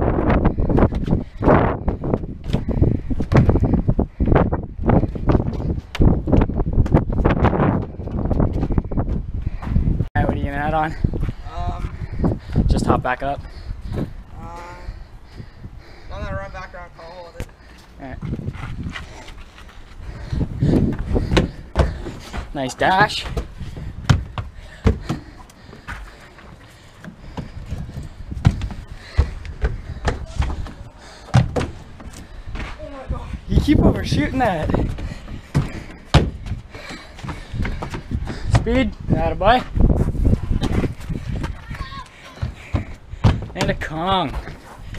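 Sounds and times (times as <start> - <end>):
running footsteps on boards: 0.2 - 10.1, 17.4 - 32.8, 33.6 - 44.9
feet and hands thudding on wood: 0.7 - 9.9, 20.1 - 32.8, 34.4 - 38.9, 39.7 - 44.9.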